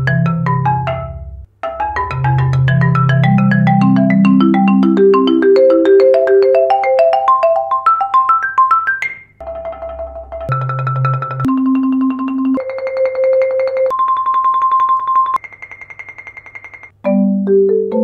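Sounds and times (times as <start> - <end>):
marimba played with hard mallets: 0.0 - 18.0.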